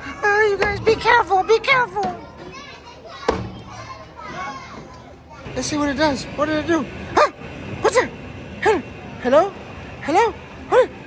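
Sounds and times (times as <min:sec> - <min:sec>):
faint children's voices: 0:00.0 - 0:07.4.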